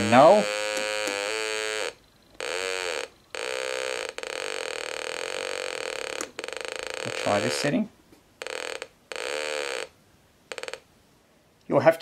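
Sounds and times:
buzzy electronic tone: 0.0 - 9.9.

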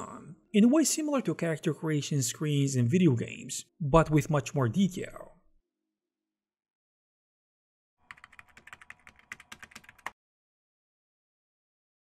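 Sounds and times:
rapid keyboard typing: 8.0 - 10.2.

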